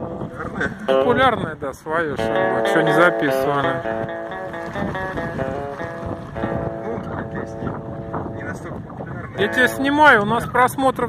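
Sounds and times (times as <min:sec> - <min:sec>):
low street rumble: 0:00.0 - 0:10.1
sustained musical tones: 0:02.1 - 0:08.6.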